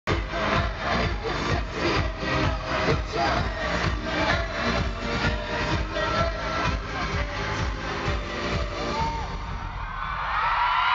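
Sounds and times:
dance-pop music with pulsing bass: 0:00.1 - 0:09.9
amplified singing voice: 0:00.1 - 0:10.0.

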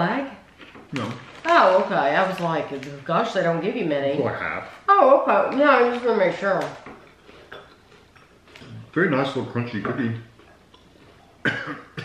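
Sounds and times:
biscuit being chewed: 0:10.4 - 0:11.4.

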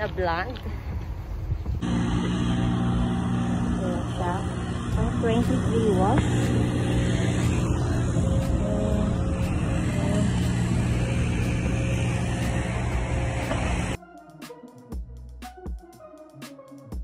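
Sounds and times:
vehicle engine rumbling: 0:01.8 - 0:14.0.

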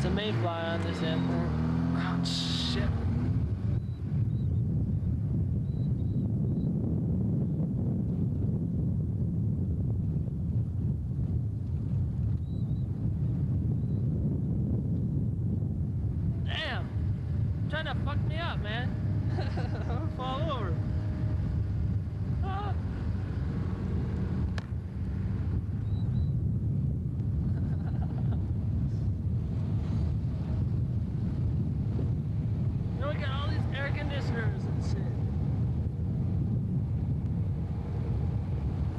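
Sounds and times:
vehicle driving slowly: 0:00.0 - 0:38.9
wind buffeting microphone: 0:00.0 - 0:38.9.

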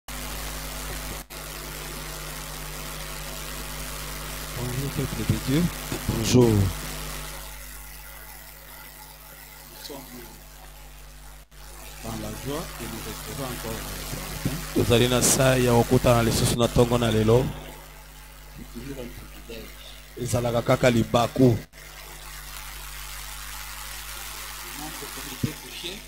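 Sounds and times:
mains hum: 0:00.1 - 0:26.0
sound system hiss: 0:00.1 - 0:26.0
man speaking into a microphone: 0:04.6 - 0:06.8, 0:12.0 - 0:17.8, 0:18.6 - 0:21.6, 0:24.8 - 0:26.0.

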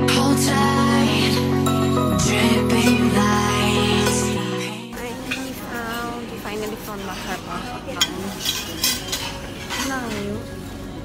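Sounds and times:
people talking: 0:04.9 - 0:08.6, 0:09.8 - 0:10.5
dishes and cutlery clinking: 0:05.0 - 0:10.7.

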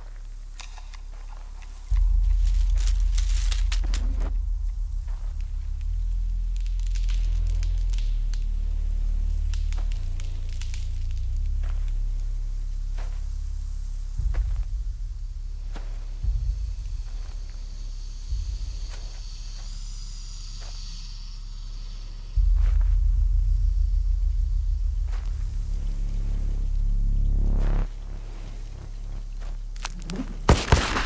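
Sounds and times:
corn stalks rustling: 0:00.0 - 0:19.9, 0:22.4 - 0:31.0
low rumbling drone: 0:00.0 - 0:31.0.

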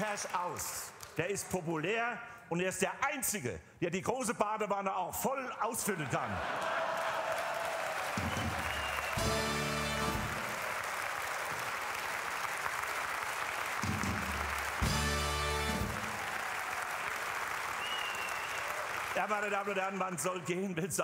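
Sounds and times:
audience applause: 0:06.0 - 0:20.6
band fanfare chords: 0:09.1 - 0:10.6, 0:13.8 - 0:16.3.

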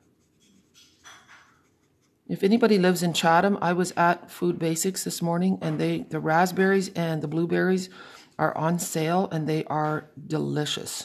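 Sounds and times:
marker tip rubbing on cardstock: 0:00.0 - 0:01.0.

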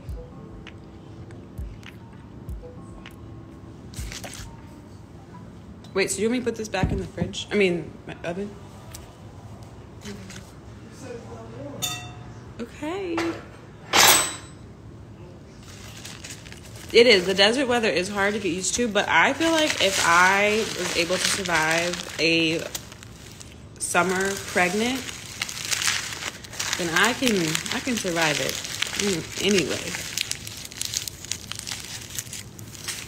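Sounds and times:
kitchen clatter: 0:13.2 - 0:14.6
crinkling and rustling: 0:15.6 - 0:33.0.

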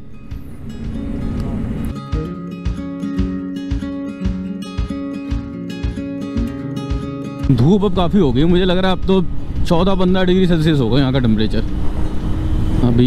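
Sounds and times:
acoustic guitar folk music: 0:00.0 - 0:07.9.

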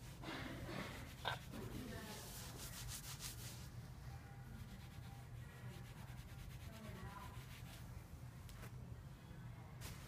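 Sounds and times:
quick rubbing strokes: 0:00.9 - 0:03.7.

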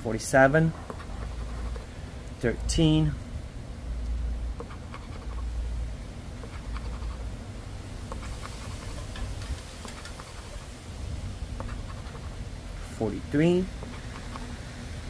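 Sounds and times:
coin scratching lottery ticket: 0:00.7 - 0:01.8, 0:04.6 - 0:05.5, 0:06.4 - 0:07.3, 0:08.1 - 0:10.8, 0:11.6 - 0:12.4, 0:13.5 - 0:14.6
wind rumbling on microphone: 0:06.9 - 0:12.9.

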